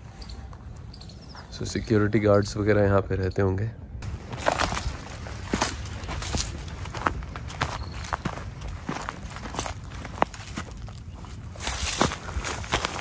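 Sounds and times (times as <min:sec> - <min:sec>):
dry vegetation crackling underfoot: 0:04.0 - 0:13.0
footsteps through dry leaves: 0:04.0 - 0:13.0.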